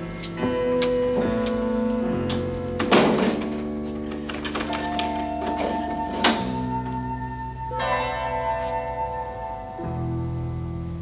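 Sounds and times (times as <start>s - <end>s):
dramatic sustained chords: 0.0s - 11.0s.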